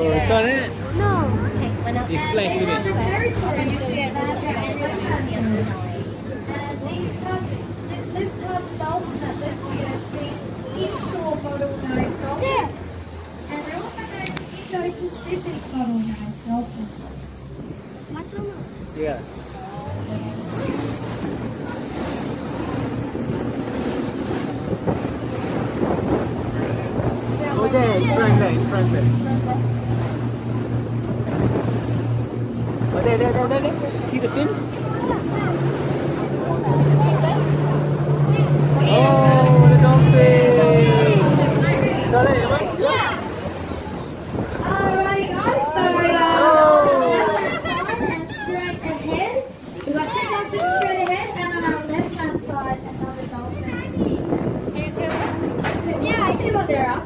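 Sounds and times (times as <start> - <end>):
boat engine humming: 0.0 - 57.0
people and children chattering: 0.0 - 57.0
water washing against hull: 0.0 - 57.0
wind buffeting microphone: 0.0 - 57.0.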